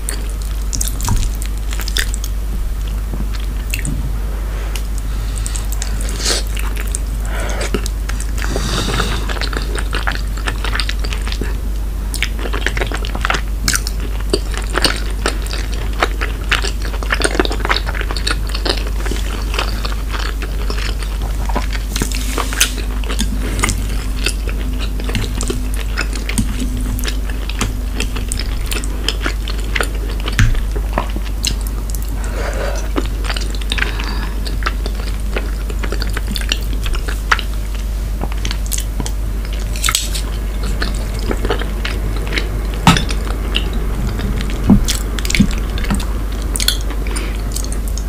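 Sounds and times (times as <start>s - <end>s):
close chewing mouth sounds: 4.7s - 48.0s.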